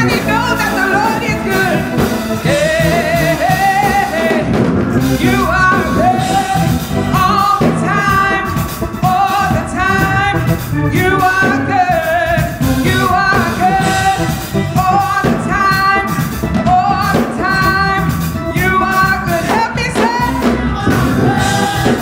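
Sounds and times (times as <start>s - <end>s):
instrumental accompaniment: 0.0s - 22.0s
women singing gospel song: 0.0s - 22.0s.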